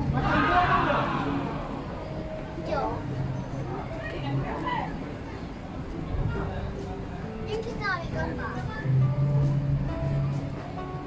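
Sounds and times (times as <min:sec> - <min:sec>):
restaurant background noise: 0:00.0 - 0:11.0
child's voice: 0:07.5 - 0:09.0.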